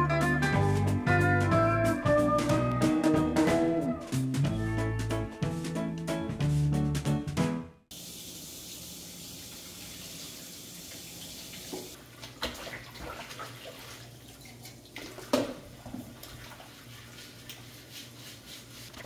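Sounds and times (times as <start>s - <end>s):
dish brush scrubbing dishes: 11.6s - 19.0s.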